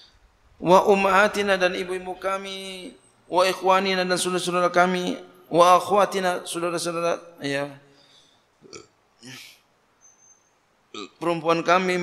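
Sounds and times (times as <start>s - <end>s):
man's quiet vocal sounds: 8.6s - 9.7s.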